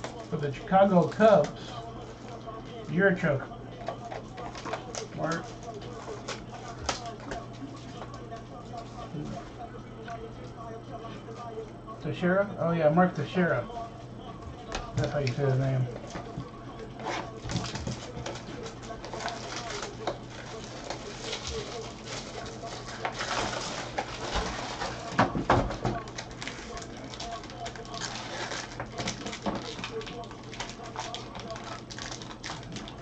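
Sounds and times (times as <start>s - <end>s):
low steady hum: 0.0s - 33.0s
plastic crinkling: 3.6s - 9.6s, 14.8s - 33.0s.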